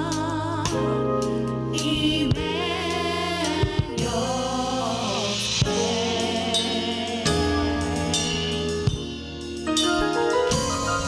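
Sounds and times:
gospel choir singing: 0.0s - 9.6s
keyboard accompaniment: 0.0s - 11.0s
drum hits: 5.6s - 11.0s.

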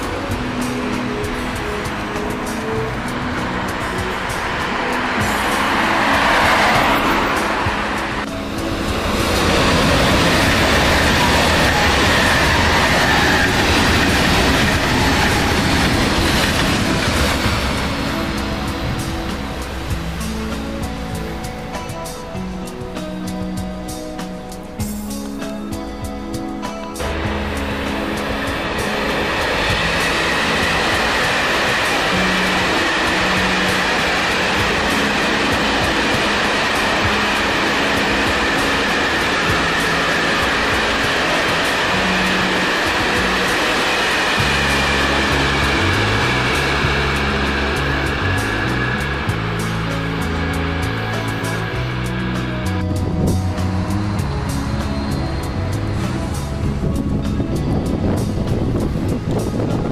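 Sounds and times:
loud steady rushing noise: 0.0s - 59.9s
music with stepping bass line: 0.0s - 59.9s.

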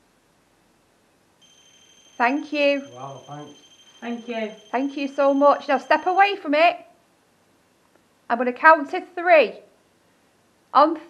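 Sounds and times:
high electronic beep tone: 1.4s - 6.5s.

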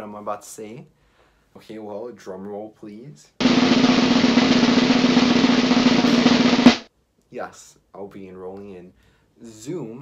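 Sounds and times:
accented snare hit: 3.4s - 6.9s
snare drum roll: 3.4s - 6.9s.

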